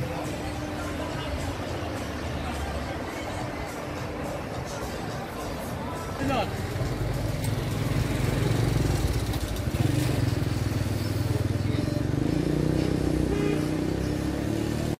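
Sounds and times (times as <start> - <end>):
vehicle engine rumbling: 6.4 - 14.5.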